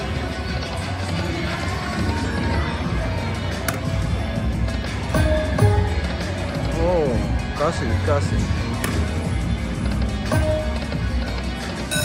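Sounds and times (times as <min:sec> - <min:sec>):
slot machine reel-spin music: 0:09.6 - 0:12.0.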